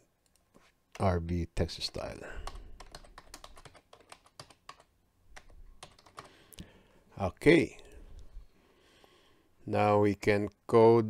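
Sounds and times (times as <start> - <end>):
computer keyboard typing: 1.7 - 6.4.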